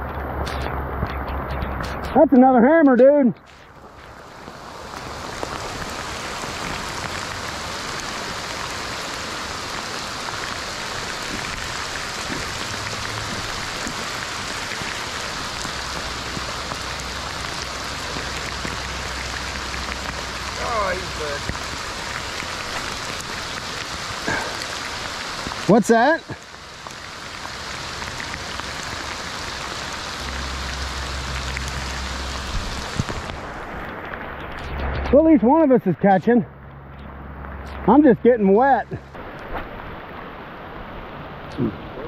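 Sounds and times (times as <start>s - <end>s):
heavy rain on river: 0.0s - 42.0s.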